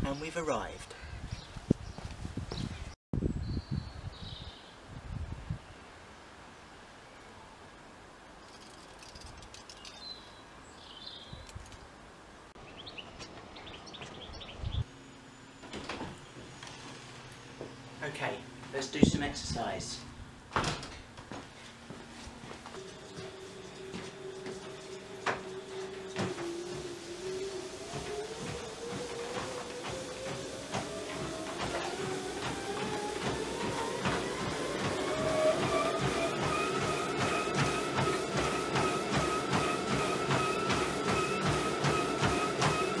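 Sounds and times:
treadmill motor whine: 0:14.7 - 0:18.7, 0:20.6 - 0:43.0
running footfalls on treadmill belt: 0:20.6 - 0:43.0.

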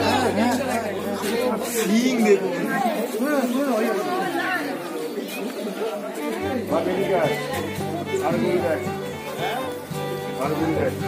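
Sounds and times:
group of people chattering: 0:00.0 - 0:11.0.

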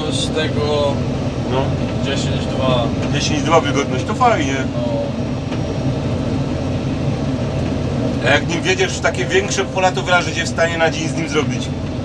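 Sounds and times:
voices talking: 0:00.0 - 0:05.3, 0:08.2 - 0:11.8
combine harvester drone: 0:00.0 - 0:12.0.

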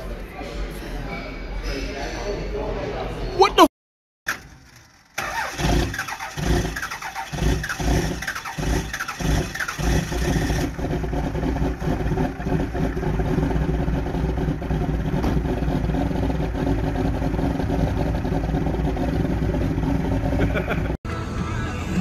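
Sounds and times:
diesel engine cranking: 0:04.3 - 0:20.9
diesel engine running: 0:04.3 - 0:22.0.

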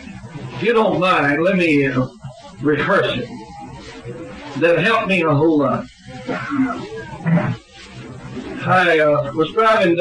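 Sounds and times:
man making wordless sounds: 0:00.6 - 0:03.3, 0:04.6 - 0:05.8.

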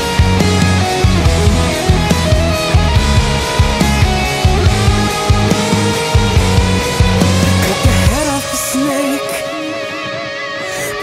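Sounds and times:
heavy rock music: 0:00.0 - 0:11.0.

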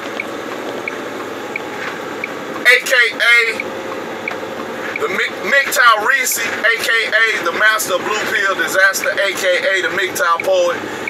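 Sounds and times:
truck cab running noise: 0:00.0 - 0:11.0.

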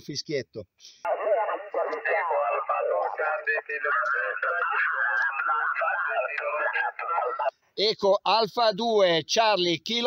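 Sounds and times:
radio voice from speaker: 0:01.1 - 0:07.5.

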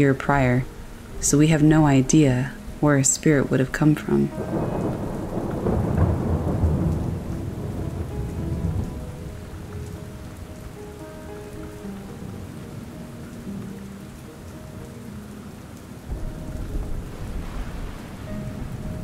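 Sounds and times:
rain falling: 0:00.0 - 0:19.0
soft sustained music notes: 0:00.0 - 0:19.0
thunder rolling: 0:04.3 - 0:10.0, 0:16.1 - 0:19.0.

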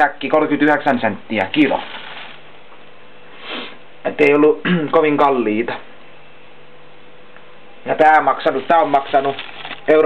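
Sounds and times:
steady hiss: 0:00.0 - 0:10.0
person sniffing: 0:03.3 - 0:03.8.

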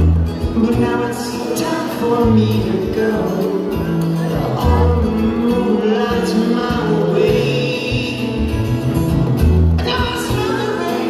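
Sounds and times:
bass line: 0:00.0 - 0:11.0
drums: 0:00.0 - 0:11.0
electric guitar: 0:00.0 - 0:11.0.

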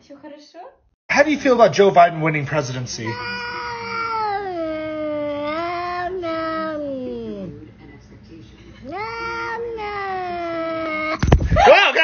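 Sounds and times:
cat meowing: 0:03.0 - 0:07.6, 0:08.8 - 0:11.2.

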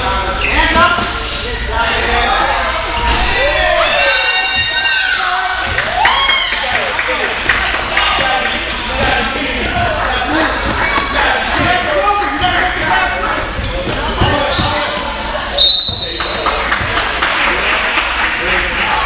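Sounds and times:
spectators' voices: 0:00.0 - 0:19.0
sneakers squeaking: 0:00.2 - 0:05.9, 0:08.0 - 0:17.2
referee's whistle blast: 0:15.6 - 0:16.2.

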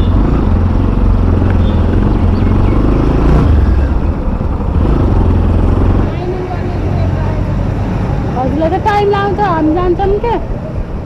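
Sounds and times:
motorcycle engine running: 0:00.0 - 0:07.7
quiet street sound: 0:00.0 - 0:11.0.

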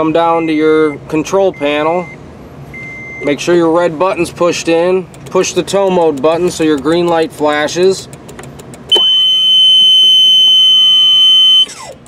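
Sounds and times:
high-pitched warning beep: 0:08.9 - 0:11.9.

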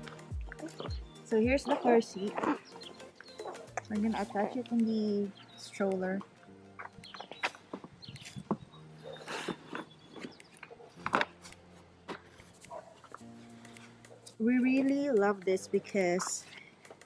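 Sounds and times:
person speaking: 0:00.0 - 0:02.8, 0:03.8 - 0:06.3, 0:14.4 - 0:16.6.

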